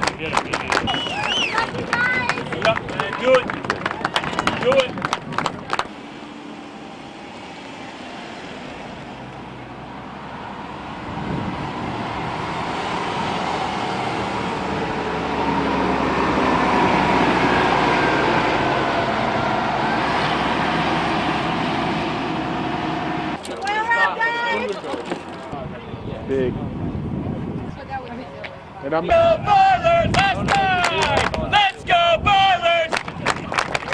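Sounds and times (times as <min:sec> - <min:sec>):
bus engine passing by: 0:00.0 - 0:33.9.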